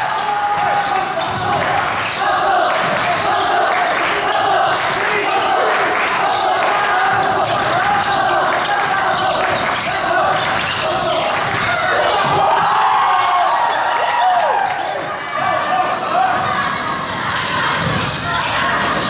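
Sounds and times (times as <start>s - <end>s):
sneaker squeaks: 0.7s - 12.7s, 13.3s - 19.0s.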